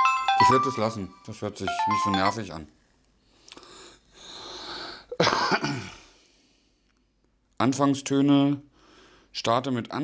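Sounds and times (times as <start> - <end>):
drawn-in breath: 3.2 - 5.1
person sneezing: 5.1 - 6.1.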